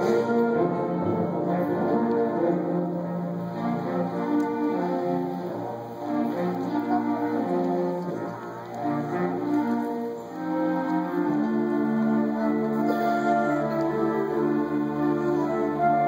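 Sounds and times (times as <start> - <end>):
concert band playing slow chords: 0.0 - 16.0.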